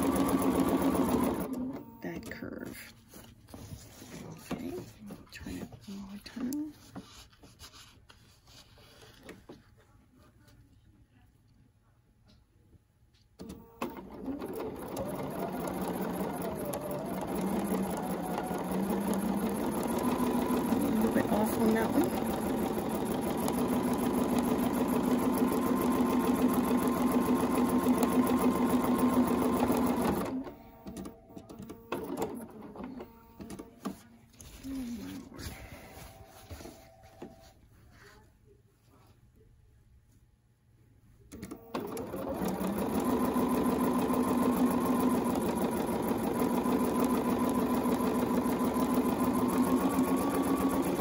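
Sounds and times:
sewing machine stitching: 0.0 - 2.2, 13.4 - 35.3, 41.3 - 51.0.

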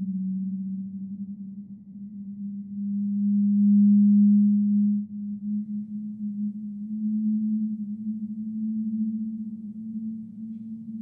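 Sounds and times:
low sustained drone: 0.0 - 11.0.

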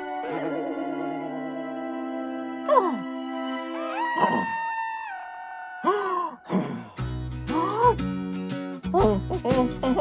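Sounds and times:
cartoon background music: 0.0 - 4.5, 7.1 - 10.0.

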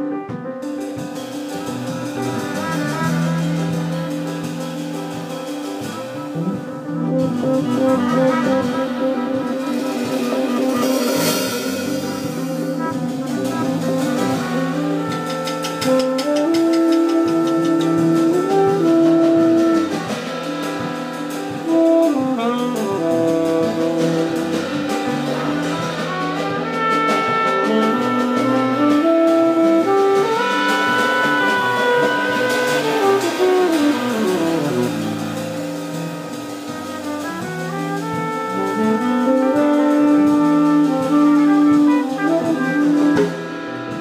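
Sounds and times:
drum kit: 0.0 - 44.0
piano: 0.0 - 44.0
trumpet: 0.0 - 44.0
double bass: 0.6 - 44.0
saxophone: 1.1 - 44.0.

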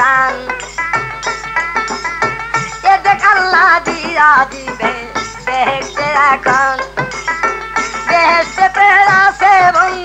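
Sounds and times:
folk music with ornamented melody: 0.0 - 10.0.

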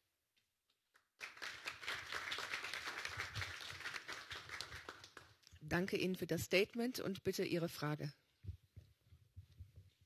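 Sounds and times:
audience applauding: 1.0 - 5.4.

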